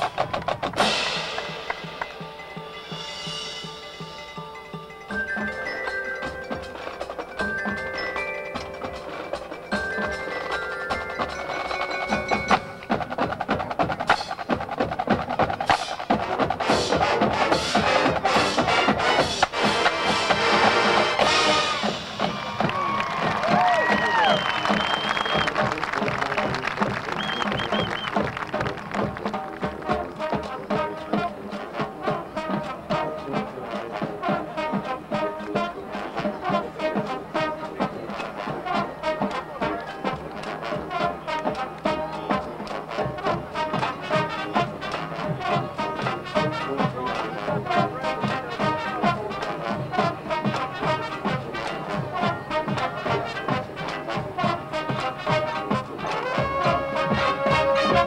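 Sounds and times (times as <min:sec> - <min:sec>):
percussion quick strikes: 0:00.0 - 0:31.7
marching band playing: 0:00.0 - 0:58.0
brass playing: 0:16.0 - 0:58.0.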